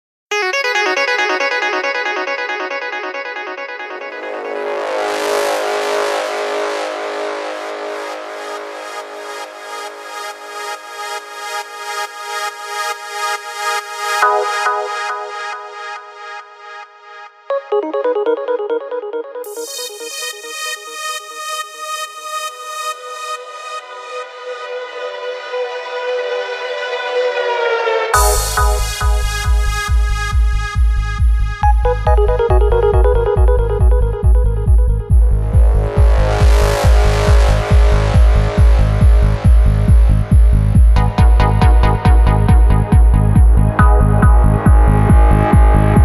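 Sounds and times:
held synth tones: 28.2s - 29.9s, 31.6s - 35.3s.

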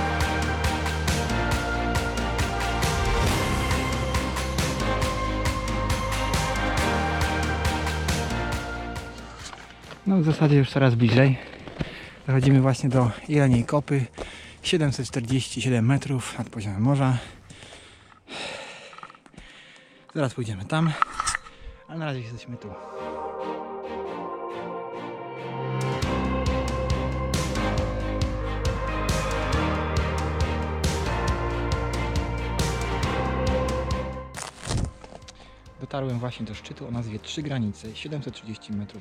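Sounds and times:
background music: 0.0s - 11.4s, 20.3s - 39.0s
man speaking: 10.0s - 11.5s, 12.3s - 17.4s, 20.1s - 21.1s, 21.8s - 22.8s
heavy breath out: 14.2s - 14.6s, 17.2s - 20.1s.

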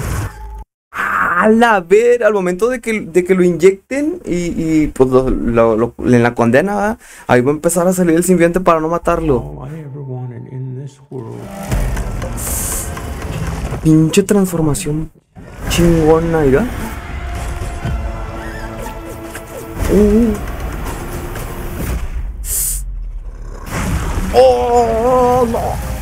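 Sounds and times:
rumbling sound effects and score: 8.2s - 26.0s
low voice-like sustained sound: 9.2s - 11.7s.

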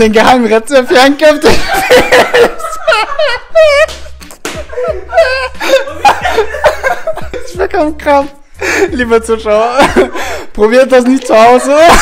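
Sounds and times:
faint background music: 0.0s - 12.0s
people laughing: 1.4s - 7.8s, 9.7s - 10.4s, 11.3s - 12.0s
sharp slap: 3.8s - 4.7s.

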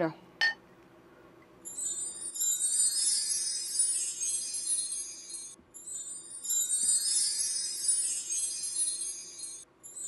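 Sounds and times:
shimmering jingle and chime: 1.6s - 10.0s.

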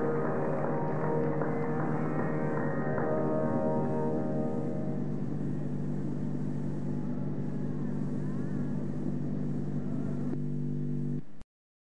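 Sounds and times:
faint gliding tone: 0.0s - 11.2s
low musical drone: 0.0s - 11.2s
tape hiss: 0.0s - 11.4s.

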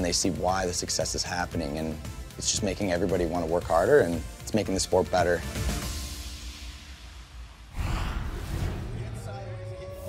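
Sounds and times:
background music beat: 0.0s - 7.4s
sudden rush of noise: 7.7s - 9.4s.

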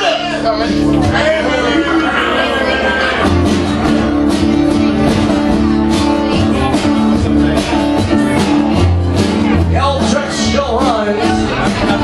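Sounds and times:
acoustic guitar strumming: 0.0s - 12.0s
drums keeping a steady beat: 0.0s - 12.0s
upright bass line: 0.0s - 12.0s.

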